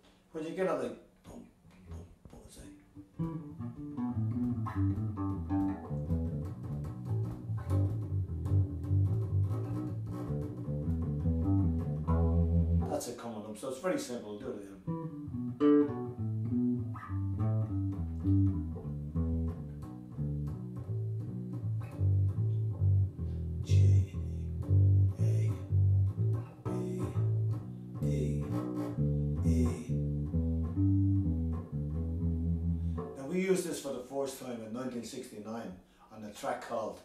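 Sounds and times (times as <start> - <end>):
electric bass guitar notes: 3.0 - 13.2, 14.7 - 33.3.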